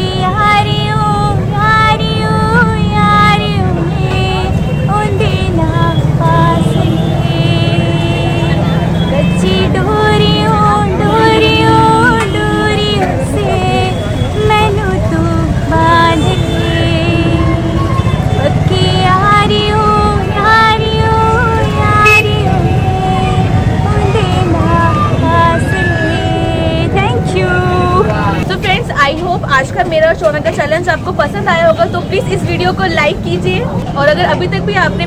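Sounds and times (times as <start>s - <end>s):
woman singing long notes: 0.0s - 8.6s, 9.2s - 28.5s
low rumble of street traffic: 0.0s - 35.0s.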